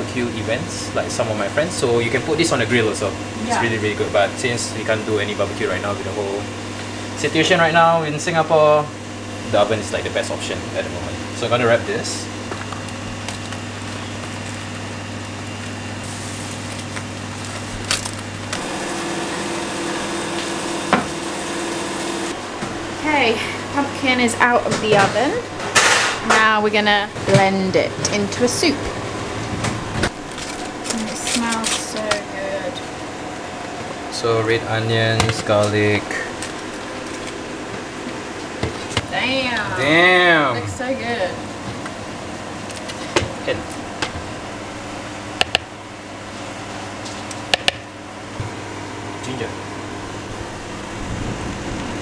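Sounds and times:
kitchen hum and hiss: 0.0 - 52.0.

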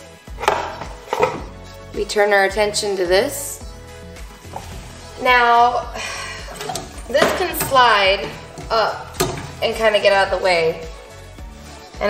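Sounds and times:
quiet background music: 0.0 - 12.0
seatbelt bracket rattling: 6.5 - 9.7.

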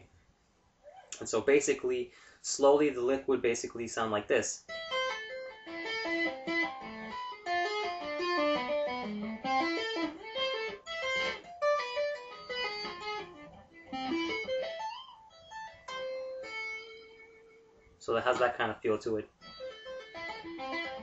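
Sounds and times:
clean electric guitar tapping arpeggios: 4.7 - 18.5, 19.4 - 21.0.

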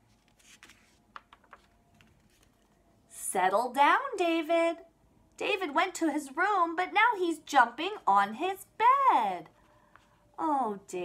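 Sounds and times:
paper page turning: 0.0 - 2.8.

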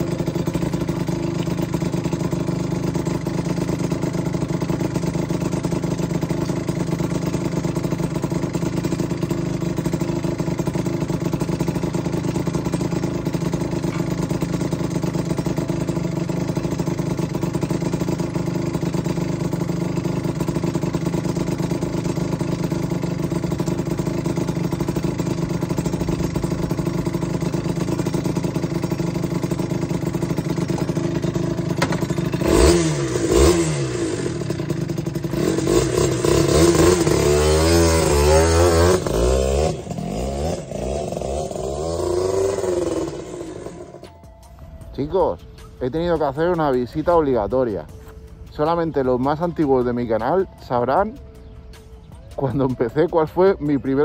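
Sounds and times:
motorcycle engine idling and revving: 0.0 - 54.0.

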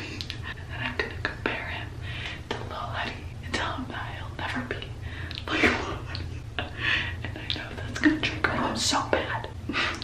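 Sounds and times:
low steady hum: 0.0 - 10.0
woman whispering: 0.5 - 2.0, 2.7 - 6.1, 7.3 - 9.6.

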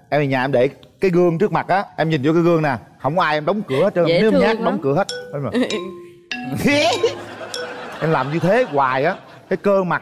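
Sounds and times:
person speaking: 3.6 - 7.3
bright glassy chime: 5.1 - 8.1.

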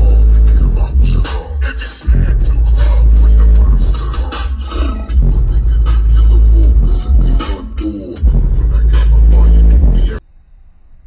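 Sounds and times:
rapping over hip-hop beat: 0.0 - 10.2
heavy subwoofer bass: 0.0 - 11.0.

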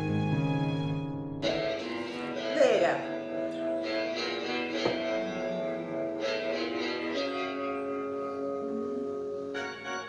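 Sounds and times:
instrumental background music: 0.0 - 10.0.

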